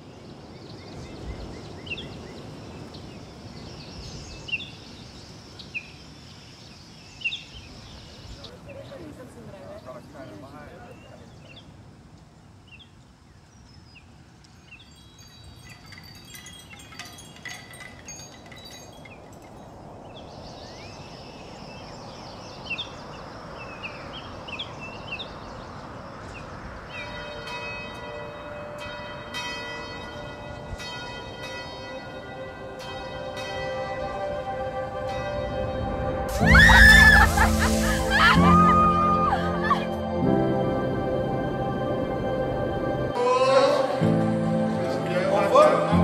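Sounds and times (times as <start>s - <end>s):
bells ringing: 14.7s - 20.2s, 26.9s - 43.1s
swell of noise: 33.7s - 46.0s.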